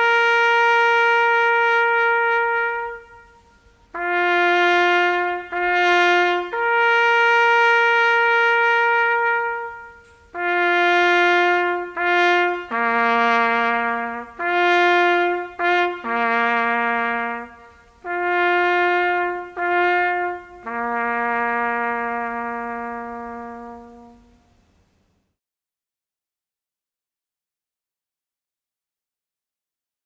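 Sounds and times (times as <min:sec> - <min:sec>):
solo trumpet playing: 0:00.0 - 0:24.7.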